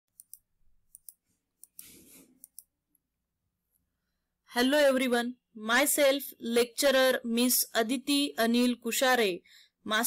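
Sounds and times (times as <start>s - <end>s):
computer mouse clicks: 0.1s - 2.8s.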